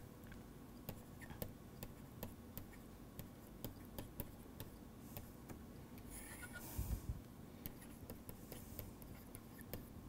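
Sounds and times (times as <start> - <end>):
stylus pen tapping on tablet screen: 0.8 - 5.6, 7.6 - 9.9.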